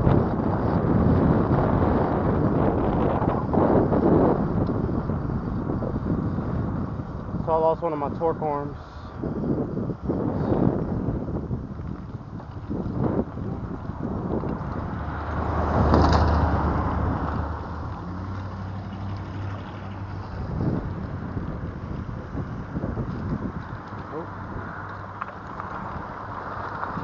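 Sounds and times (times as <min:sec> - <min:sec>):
wind rushing on microphone: 0:00.0 - 0:27.0.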